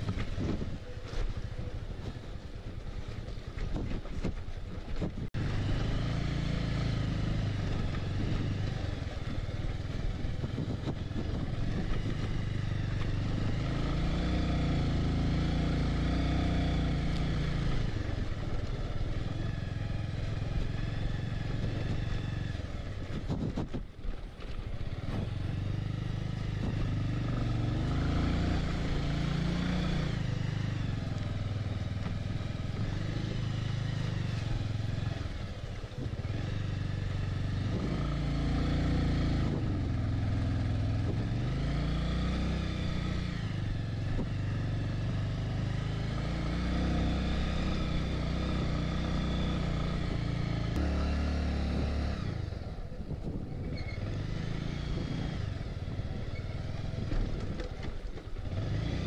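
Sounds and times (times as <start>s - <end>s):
motorcycle engine revving: 5.0s - 59.0s.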